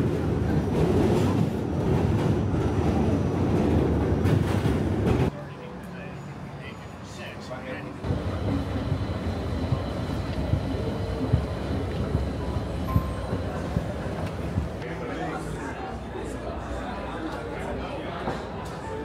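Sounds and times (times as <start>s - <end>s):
subway train rumbling over bridge: 0.0s - 16.7s
crowded store hum: 0.0s - 19.0s
street noise: 0.0s - 19.0s.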